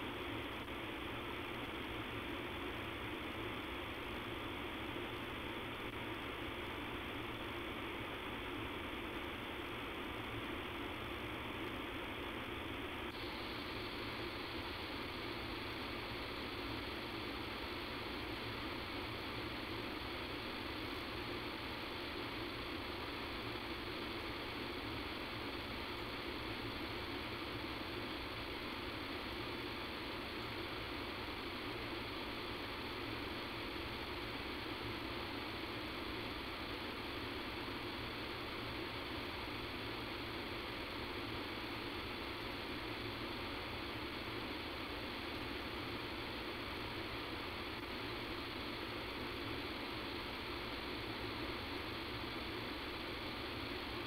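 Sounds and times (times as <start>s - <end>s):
telephone line hiss: 0.0s - 54.0s.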